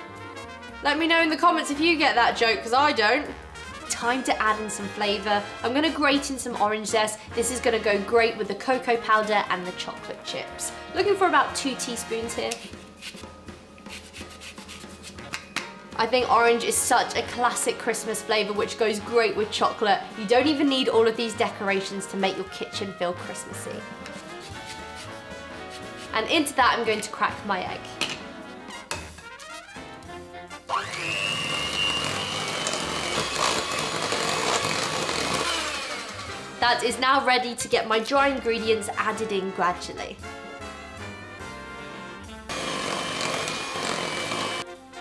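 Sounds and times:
electric hand mixer whine: 30.7 - 36.6, 42.5 - 44.6.

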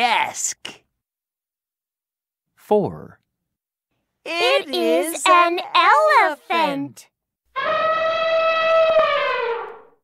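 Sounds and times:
elephant trumpeting: 7.6 - 9.9.

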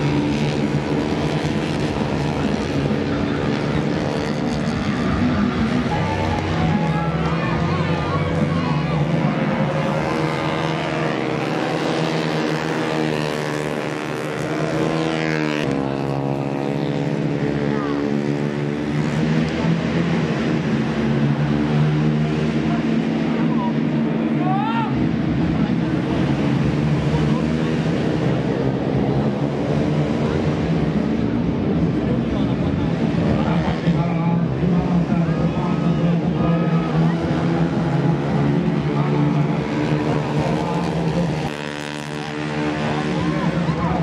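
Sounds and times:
racing motorcycle engines: 0.0 - 44.0.

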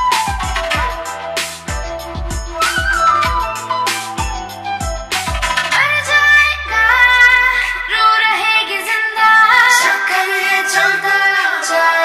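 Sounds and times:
instrumental backing: 0.0 - 9.3
deep bass note: 1.7 - 8.6
woman singing devotional song: 5.8 - 12.0.

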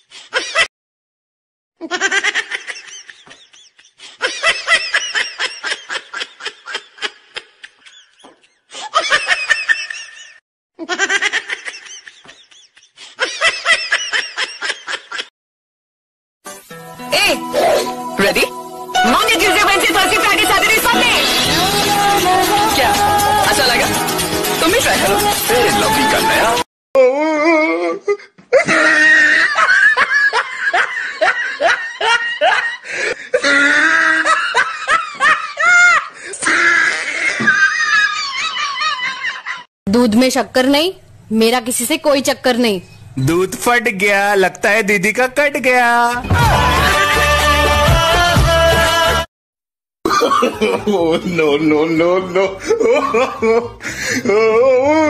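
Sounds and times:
people laughing: 1.8 - 15.3, 28.6 - 39.7, 50.1 - 55.0.

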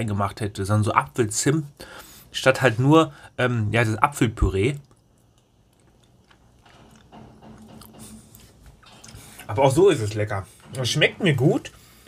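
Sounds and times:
mouth sounds eating: 4.6 - 9.5
lip and tongue clicks: 4.8 - 8.0.

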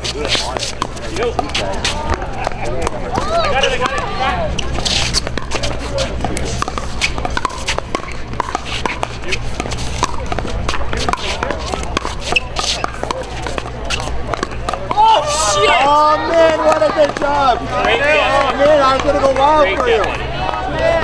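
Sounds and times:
shoe scuffs: 0.0 - 2.2
faint voices: 0.0 - 21.0.

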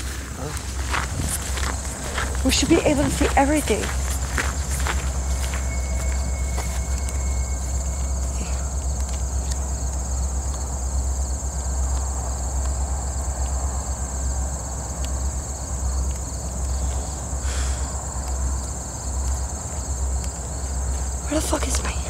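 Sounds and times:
crickets chirping: 0.0 - 22.0
low rumble: 0.0 - 22.0.

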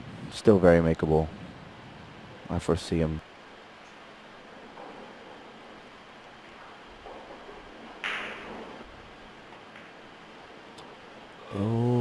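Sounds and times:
cue striking ball: 8.0 - 8.8.

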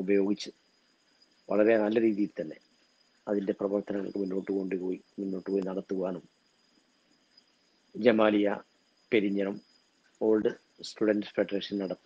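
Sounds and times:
faint high-pitched tone: 0.0 - 0.5, 1.4 - 2.6, 3.3 - 12.0
man lecturing: 0.0 - 0.5, 1.5 - 2.6, 3.3 - 6.2, 8.0 - 8.6, 9.2 - 9.6, 10.2 - 12.0.

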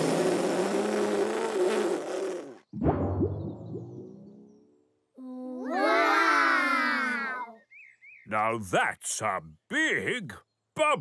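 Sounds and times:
cartoon blowing sound: 0.0 - 2.7.

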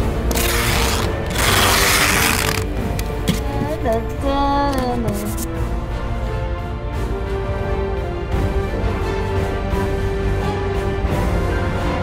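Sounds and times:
packing tape ripping: 0.0 - 3.5
background music: 0.0 - 12.0.

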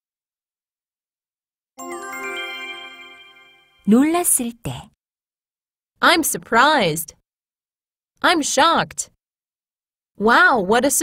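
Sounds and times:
rising bell chime jingle: 1.8 - 4.0.

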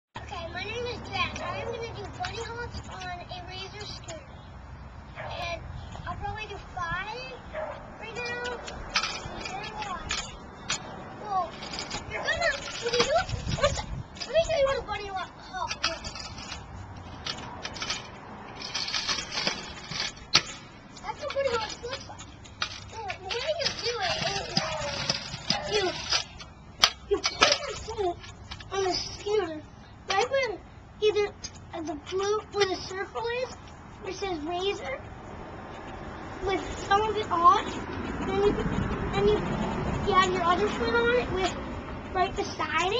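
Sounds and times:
child talking: 0.2 - 4.5, 5.2 - 16.6, 21.0 - 26.4, 27.0 - 35.2, 36.3 - 42.9
scooter wheels rolling on concrete: 0.2 - 42.9.

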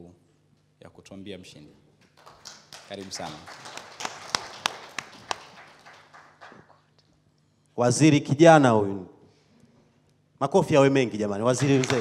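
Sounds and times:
faint scattered applause: 2.0 - 6.9, 11.5 - 12.0
sharp hand claps: 2.0 - 6.9, 11.6 - 12.0.

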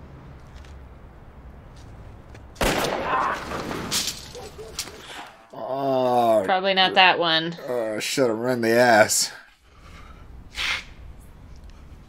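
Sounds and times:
loud blast or clatter: 2.6 - 4.4.

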